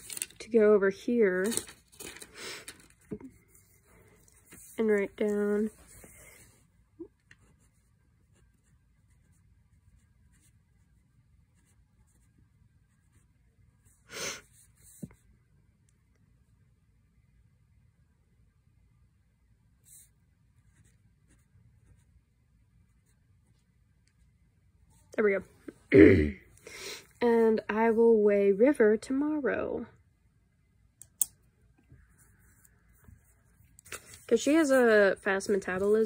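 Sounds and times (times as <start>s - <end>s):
pen scratching on paper: 7.4s - 10.9s, 11.5s - 13.3s
soft rustle: 31.9s - 36.0s.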